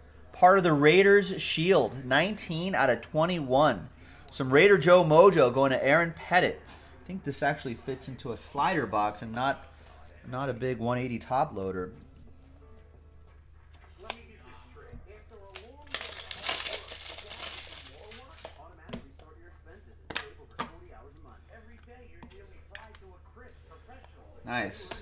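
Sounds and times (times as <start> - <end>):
faint music: 0.0 - 25.0
plastic crinkling and rustling: 13.7 - 18.7.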